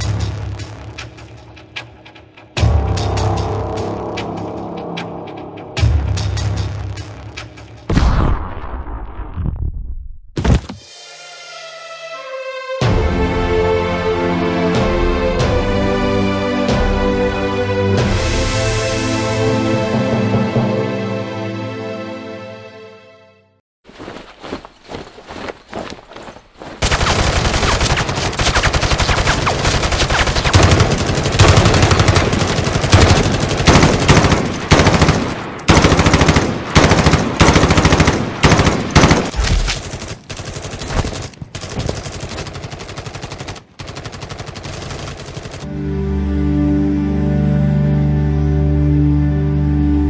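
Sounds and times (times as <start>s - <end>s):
music: 0.0s - 8.4s, 10.7s - 23.6s, 29.9s - 39.3s, 45.6s - 50.0s
automatic rifle gunfire: 26.8s - 45.7s.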